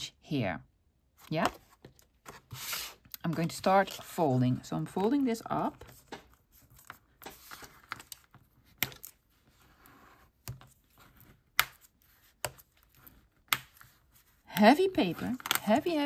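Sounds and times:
soft paper rustling: 1.2s - 16.0s.

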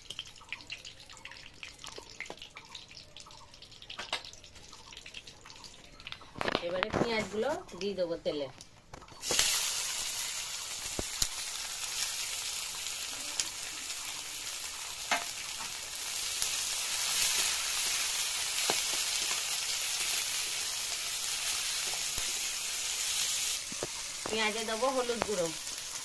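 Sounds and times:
onions sizzling in hot oil: 0.0s - 26.0s.

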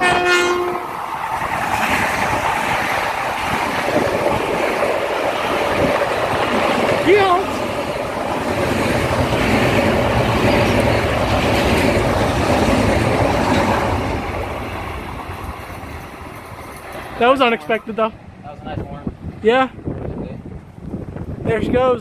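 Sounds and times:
train passing on rails: 0.0s - 22.0s.

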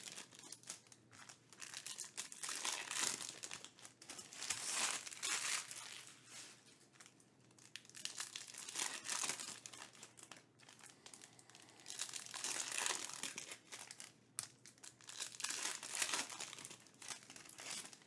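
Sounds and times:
foil wrapper crinkling: 0.0s - 18.0s.

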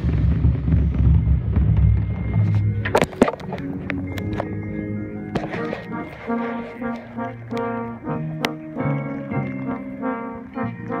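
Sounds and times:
marching bass drum rumble: 0.0s - 3.9s
band playing faintly: 1.4s - 11.0s.

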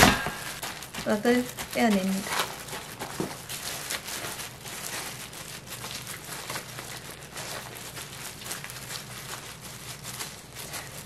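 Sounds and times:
parchment paper crinkling: 0.0s - 11.0s.

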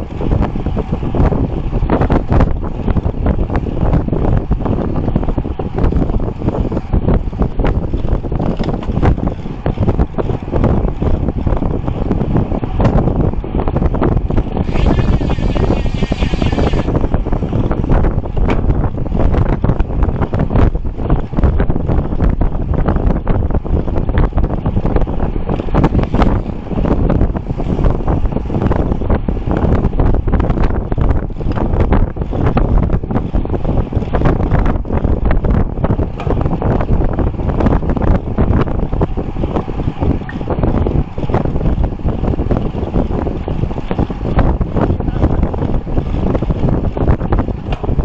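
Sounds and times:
wind buffeting microphone: 0.0s - 48.0s.

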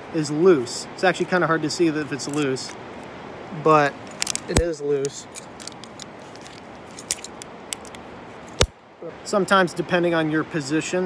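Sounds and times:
carabiners clicking and clinking: 4.1s - 8.7s.

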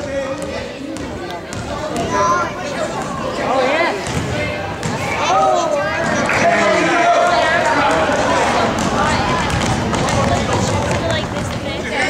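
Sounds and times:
basketball bouncing on hardwood: 8.7s - 11.6s.

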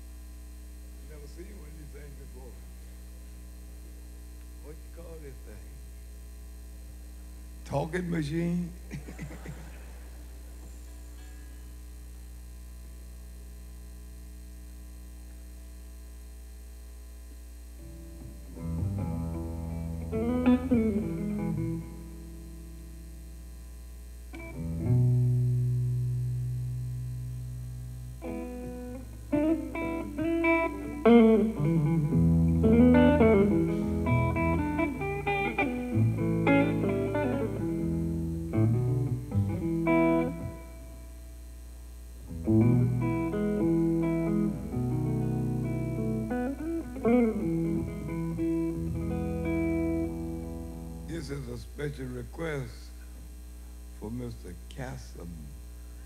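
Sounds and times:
amplifier hum: 0.0s - 56.0s
electric guitar blues licks: 17.8s - 22.8s, 24.3s - 41.1s, 42.2s - 51.5s.

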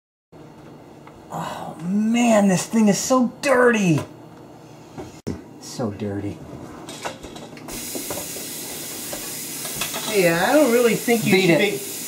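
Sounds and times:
faucet turned on: 7.7s - 12.0s
water running into sink: 7.7s - 12.0s.

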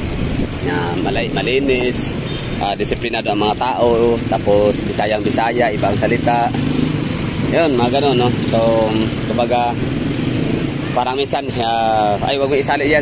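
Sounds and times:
motorcycle engines humming: 0.0s - 13.0s
man talking: 0.6s - 6.6s, 7.4s - 9.8s, 10.9s - 13.0s.

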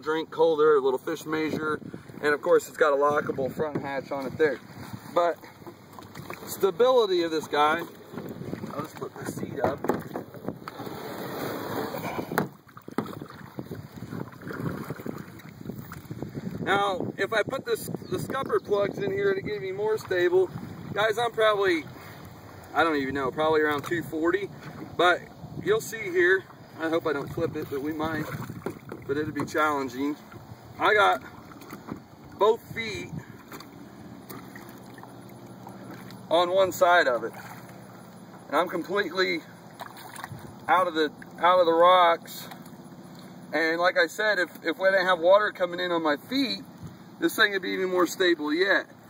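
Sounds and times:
wind rushing over microphone: 1.3s - 5.2s, 7.5s - 21.1s, 23.2s - 26.3s, 27.1s - 30.8s, 31.7s - 33.4s
knocks and clunks from plastic kayak: 3.1s - 16.8s, 26.5s - 38.5s, 39.8s - 41.4s
low steady hiss: 15.4s - 49.0s.

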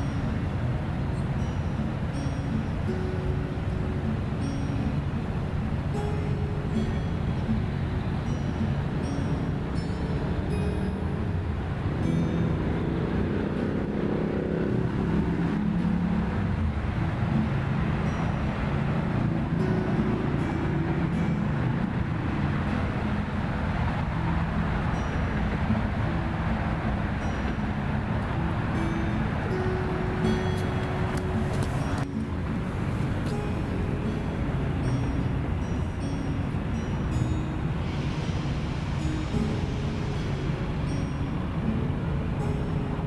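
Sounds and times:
road traffic noise: 0.0s - 43.0s.

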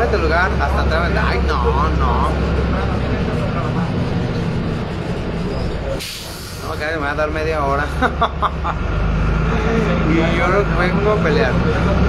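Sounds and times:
bus engine drone: 0.0s - 12.0s
man laughing: 7.8s - 8.9s.

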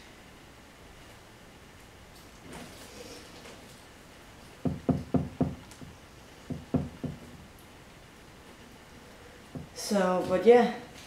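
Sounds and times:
dull knocks on glass: 4.6s - 7.4s, 9.5s - 9.7s.

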